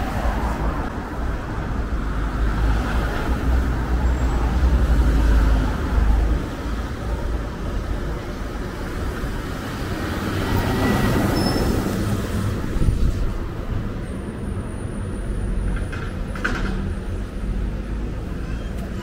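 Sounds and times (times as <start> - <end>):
vehicles passing on road: 0.0 - 19.0.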